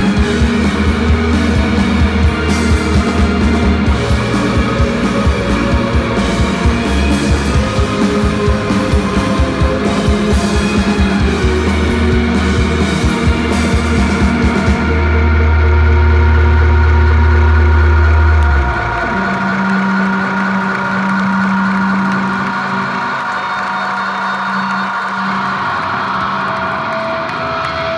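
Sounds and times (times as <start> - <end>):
droning guitar and keyboard chord: 0.0 - 23.2
rock band playing live: 0.0 - 27.9.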